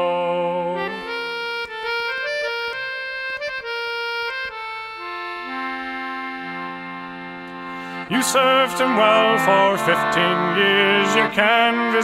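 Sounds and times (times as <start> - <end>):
accordion playing folk melody: 0.0 - 12.0.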